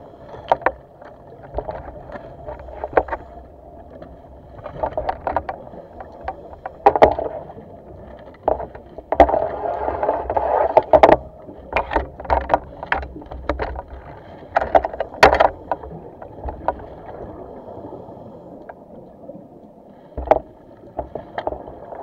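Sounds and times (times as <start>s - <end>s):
underwater clicks and knocks: 0.3s - 17.4s, 20.2s - 22.0s.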